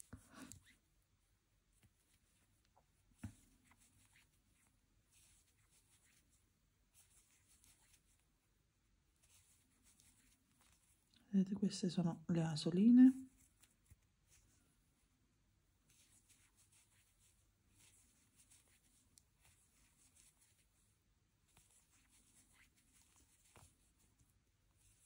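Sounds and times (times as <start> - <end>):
crochet hook scratching yarn: 1.8 - 8.2, 9.2 - 11.1, 15.8 - 20.8, 21.4 - 25.0.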